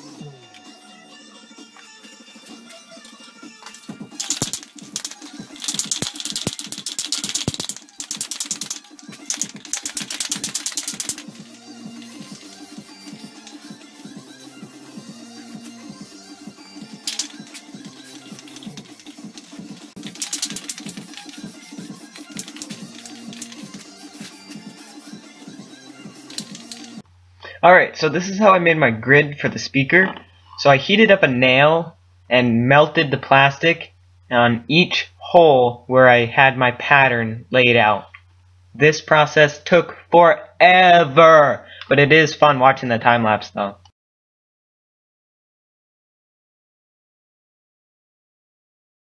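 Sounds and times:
sped up garbled radio music: 0:01.5 - 0:27.0
spray paint can hissing: 0:04.1 - 0:13.8, 0:17.0 - 0:25.2, 0:26.1 - 0:27.0.

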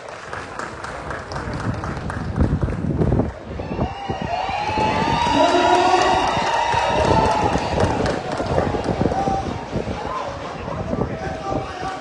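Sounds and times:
crowd clapping: 0:00.0 - 0:03.5, 0:04.8 - 0:09.2
high-pitched cheering: 0:03.5 - 0:09.5.

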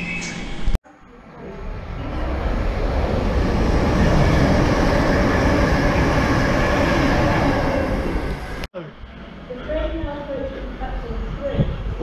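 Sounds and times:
train passing: 0:01.0 - 0:12.0.

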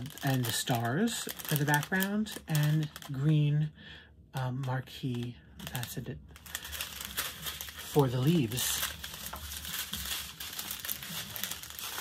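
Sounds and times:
plastic bags crinkling: 0:00.0 - 0:03.6, 0:04.4 - 0:12.0.

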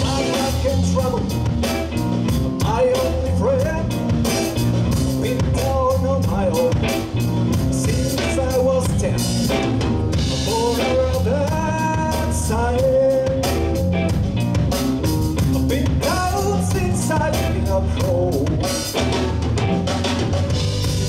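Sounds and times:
bass guitar: 0:00.0 - 0:21.0
drum kit: 0:00.0 - 0:21.0
electric guitar lead: 0:00.0 - 0:21.0.

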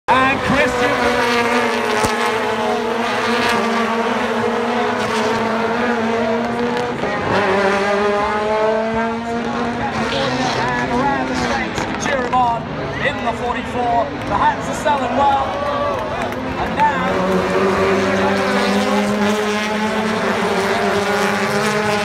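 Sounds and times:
race car engines: 0:00.1 - 0:22.0.

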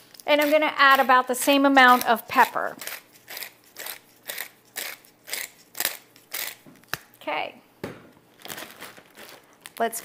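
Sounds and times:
pepper mill grinding: 0:00.1 - 0:06.6.

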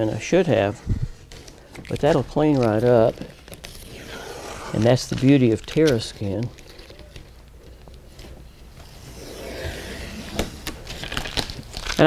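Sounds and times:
tape being peeled off paper: 0:01.2 - 0:12.0.

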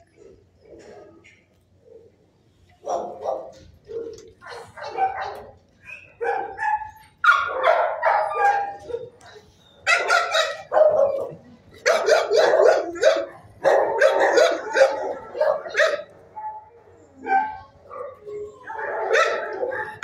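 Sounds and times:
dogs barking: 0:02.7 - 0:20.0.

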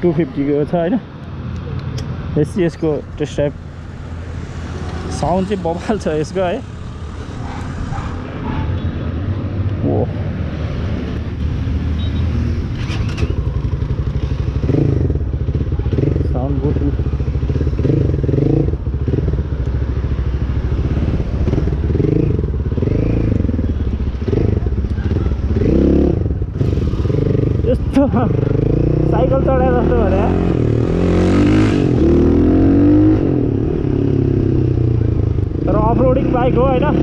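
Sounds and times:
motorcycle engine running: 0:12.8 - 0:37.0.

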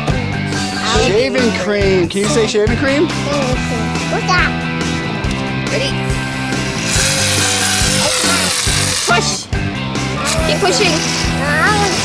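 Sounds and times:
aerosol can spraying foam: 0:06.0 - 0:09.3, 0:10.2 - 0:12.0.

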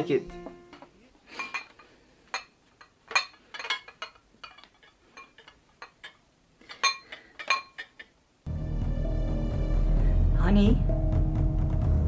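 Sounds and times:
china bowl clinking: 0:00.7 - 0:08.2.

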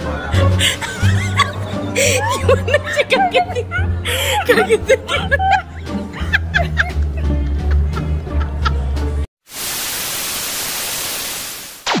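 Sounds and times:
music: 0:00.0 - 0:09.3
loud static hiss: 0:09.4 - 0:12.0.

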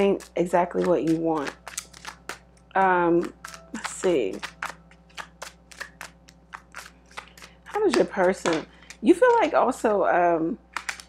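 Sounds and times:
cards being shuffled: 0:00.0 - 0:10.0, 0:10.7 - 0:11.0.

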